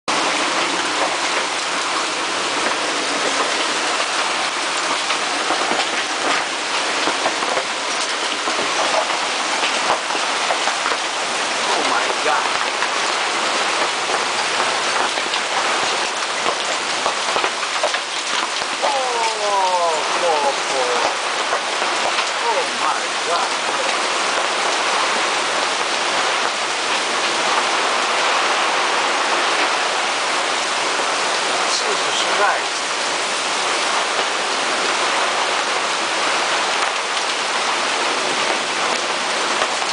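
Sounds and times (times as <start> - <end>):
heavy rain on deck and canvas: 0.1 - 39.9.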